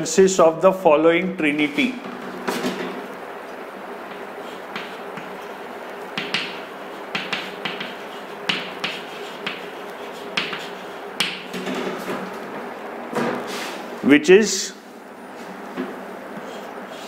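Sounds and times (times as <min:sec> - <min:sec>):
steady low hum: 0:00.0 - 0:17.0
chalk tapping and scratching on board: 0:04.1 - 0:05.6, 0:06.2 - 0:11.6, 0:16.3 - 0:17.0.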